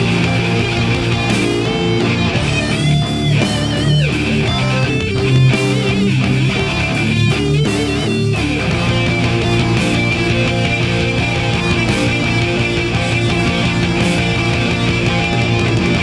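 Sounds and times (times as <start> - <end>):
electric guitar lead: 0.0 - 16.0
heavy rock backing track: 0.0 - 16.0.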